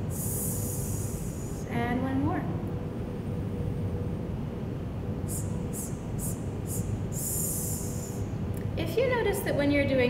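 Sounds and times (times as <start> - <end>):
low steady hum: 0.0 - 10.0
breath hissing through teeth: 5.3 - 8.3.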